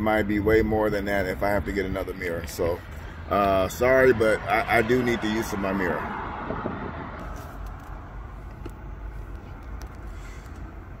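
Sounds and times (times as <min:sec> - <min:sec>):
truck engine rumble: 0:00.0 - 0:11.0.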